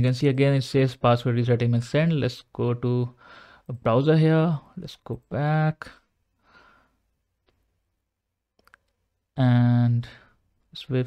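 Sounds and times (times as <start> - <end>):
faint breath: 3.2 - 3.7, 6.4 - 7.1.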